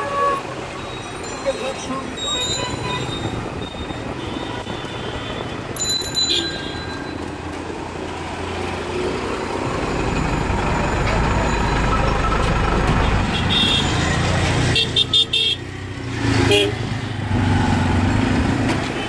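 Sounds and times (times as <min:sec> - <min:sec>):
vehicle horns honking: 0:00.0 - 0:05.6, 0:06.2 - 0:07.2, 0:12.9 - 0:15.7, 0:16.4 - 0:16.8
bus engine rumbling: 0:00.0 - 0:19.0
dense road traffic: 0:00.0 - 0:19.0.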